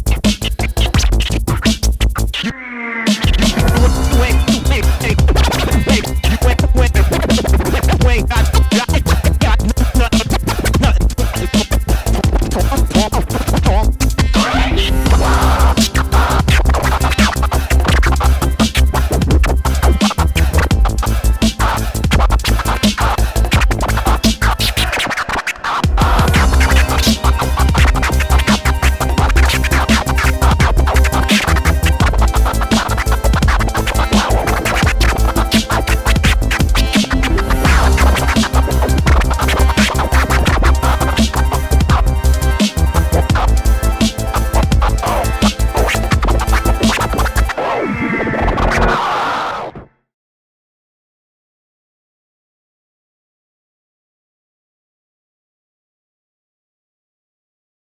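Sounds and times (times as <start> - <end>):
hip hop beat with heavy bass: 0.0 - 49.1
vinyl scratching: 0.0 - 49.9.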